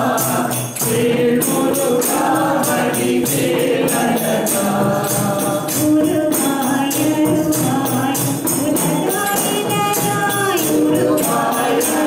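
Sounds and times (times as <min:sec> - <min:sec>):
group singing devotional song: 0:00.0 - 0:12.0
tambourine beat: 0:00.0 - 0:12.0.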